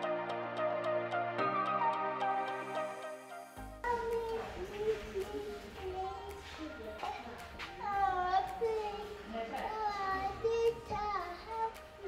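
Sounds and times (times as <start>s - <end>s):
background music: 0.0s - 12.0s
small child's wordless voice: 3.9s - 11.8s.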